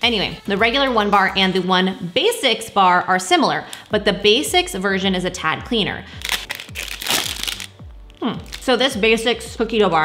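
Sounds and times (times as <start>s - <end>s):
background music with kick drum: 0.0s - 3.2s, 3.8s - 10.0s
plastic wrapper crinkling: 6.2s - 8.8s.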